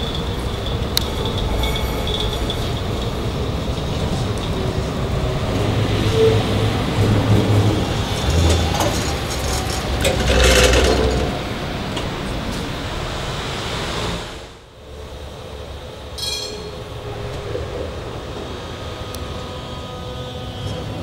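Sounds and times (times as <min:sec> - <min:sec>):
tram motors and wheels rumbling: 0:00.0 - 0:21.0.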